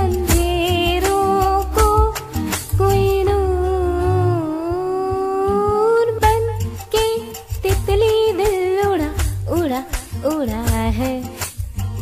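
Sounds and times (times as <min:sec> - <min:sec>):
backing track with steady bass: 0:00.0 - 0:12.0
person singing a long note: 0:03.3 - 0:06.1.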